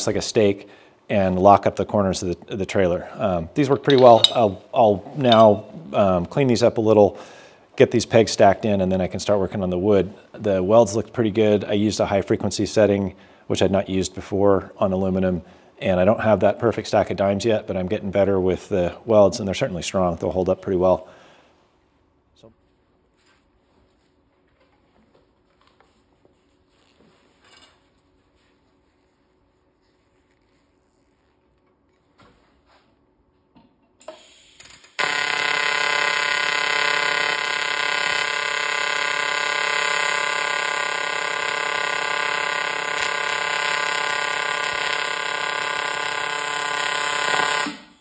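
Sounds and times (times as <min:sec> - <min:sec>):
welding arc buzzing and hissing: 0:34.1 - 0:48.0.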